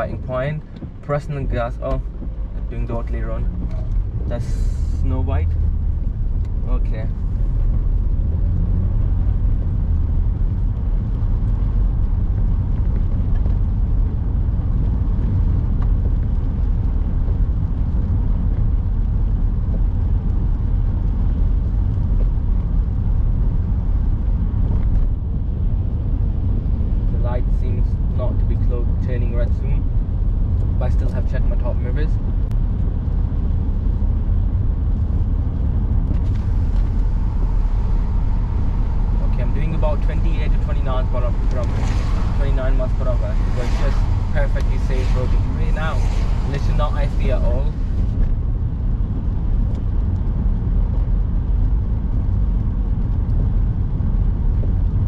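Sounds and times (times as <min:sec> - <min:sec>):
engine and road rumble: 0:00.0 - 0:55.0.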